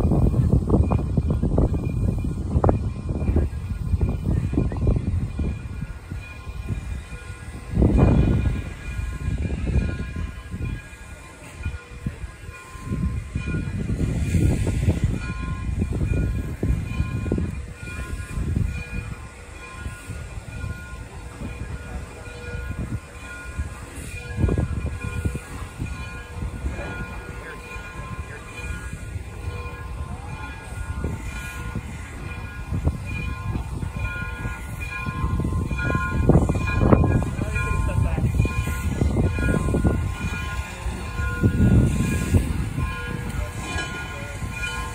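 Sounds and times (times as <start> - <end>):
steam locomotive rumble: 0.0 - 44.9.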